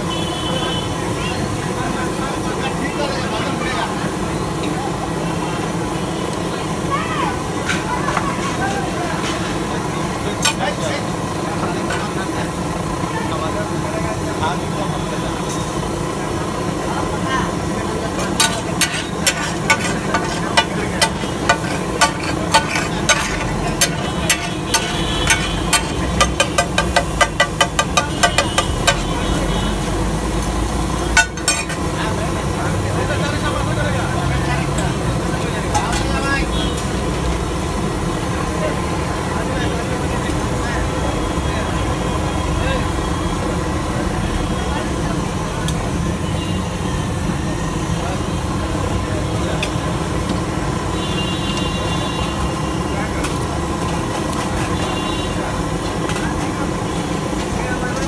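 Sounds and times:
food sizzling on griddle: 0.1s - 40.7s
metal spatula clacking on griddle: 18.2s - 29.2s, 31.2s - 31.9s.

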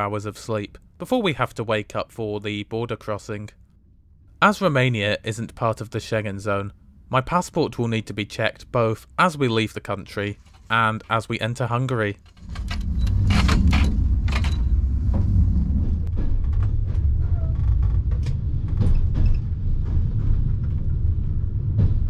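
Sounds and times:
train carriage low rumble: 0.0s - 22.0s
sharp rattles and clicks: 12.2s - 15.3s, 16.0s - 21.2s.

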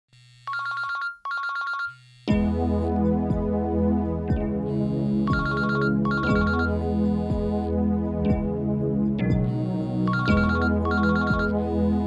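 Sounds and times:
telephone ringing: 0.3s - 2.0s, 4.8s - 7.6s, 9.5s - 11.8s.

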